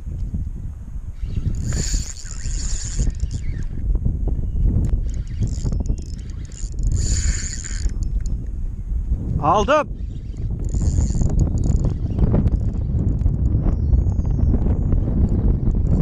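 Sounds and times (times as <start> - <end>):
wind buffeting microphone: 0.0 - 16.0
fishing reel whirring: 1.1 - 8.6, 9.6 - 14.2.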